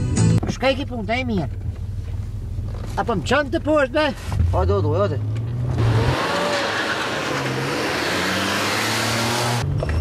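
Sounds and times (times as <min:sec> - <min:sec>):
car engine revving: 0:04.4 - 0:09.8.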